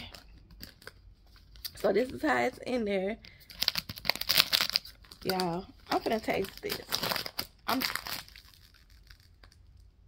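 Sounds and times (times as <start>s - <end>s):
plastic wrap crinkling: 3.4s - 10.0s.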